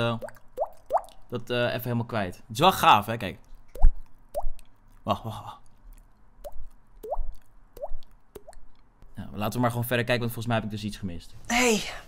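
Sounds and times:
mouth water-drop plops: 0:00.1 - 0:01.3.

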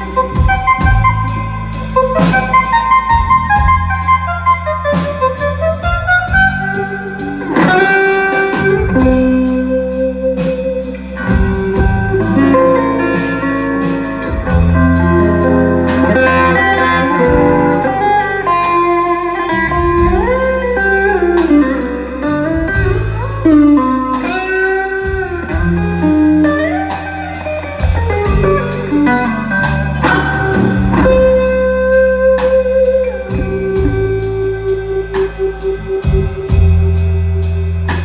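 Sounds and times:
drum kit cymbal beat: 0:00.0 - 0:38.0
electric bass: 0:00.0 - 0:38.0
electric guitar melody: 0:00.0 - 0:38.0.

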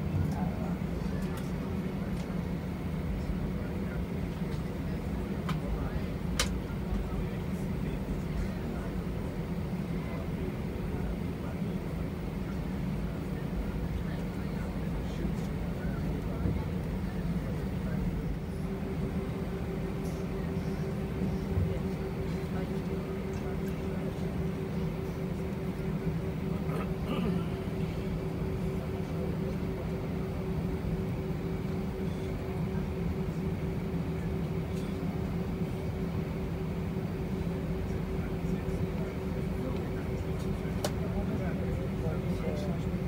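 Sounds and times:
jet engines idling rumble: 0:00.0 - 0:43.0
steady hum: 0:00.0 - 0:43.0.

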